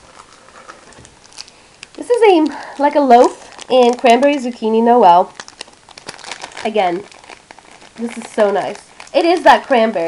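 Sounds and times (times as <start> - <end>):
plastic bags rustling: 0.0 - 10.0.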